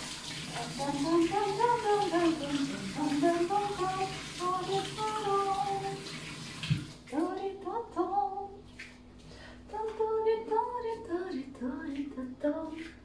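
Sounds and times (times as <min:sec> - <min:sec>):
tap running into steel sink: 0:06.6 - 0:06.9.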